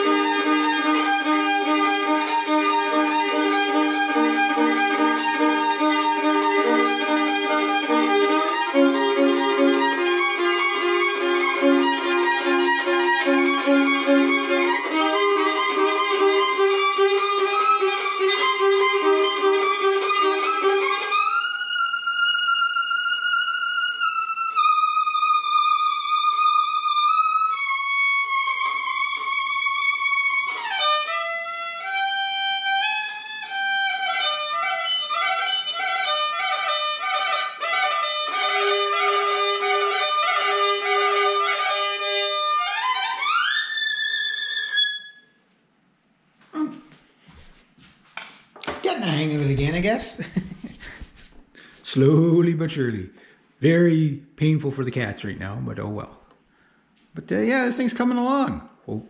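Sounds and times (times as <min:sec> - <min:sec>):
solo violin playing: 0:00.0 - 0:45.4, 0:49.0 - 0:50.2.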